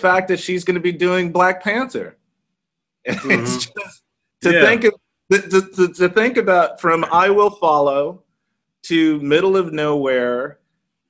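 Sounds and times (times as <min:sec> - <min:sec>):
man clearing his throat: 0:03.1 - 0:03.9.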